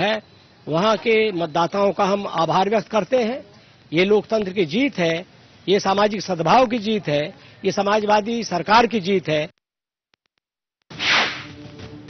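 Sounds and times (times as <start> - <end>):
whoosh transition effect: 10.9 - 11.5.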